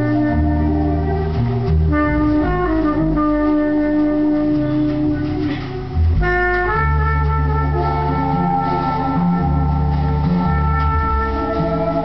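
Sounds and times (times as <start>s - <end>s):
jazz melody instrument: 0.0s - 12.0s
plucked double bass: 0.0s - 12.0s.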